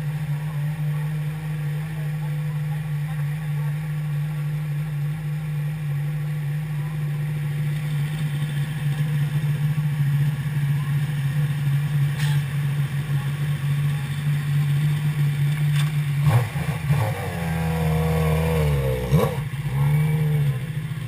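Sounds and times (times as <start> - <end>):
motorcycle engine revving: 0.0 - 21.0
second motorcycle arriving: 0.0 - 21.0.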